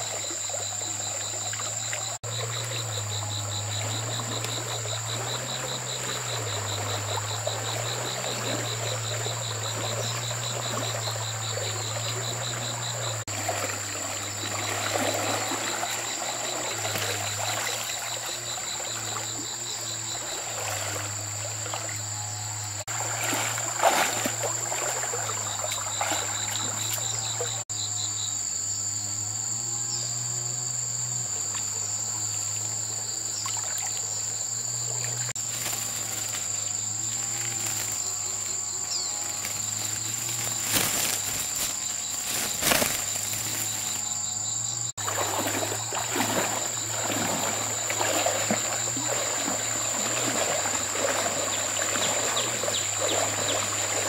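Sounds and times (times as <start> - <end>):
stream water flowing: 0.0 - 27.6, 31.3 - 54.0
insect chorus buzzing and trilling: 0.0 - 54.0
net splashing and dripping water: 0.1 - 19.5, 20.1 - 21.9, 22.8 - 27.5, 33.4 - 34.1, 34.9 - 44.1, 44.9 - 54.0.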